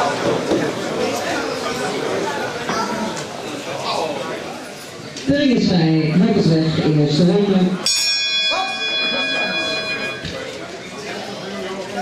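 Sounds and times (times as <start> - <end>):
voices in a hall: 0.0 - 12.0
boxing ring bell ringing: 7.8 - 10.6.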